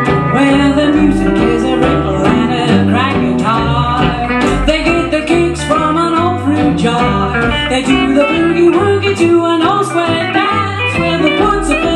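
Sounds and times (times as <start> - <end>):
hillbilly band playing live: 0.0 - 11.9.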